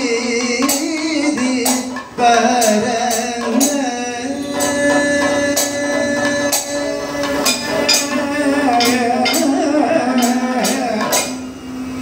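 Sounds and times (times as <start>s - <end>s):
hand cymbal strikes: 0.0s - 12.0s.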